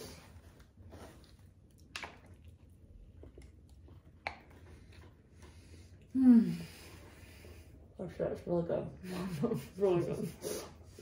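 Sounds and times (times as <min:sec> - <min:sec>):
people chewing food: 0:00.0 - 0:08.0.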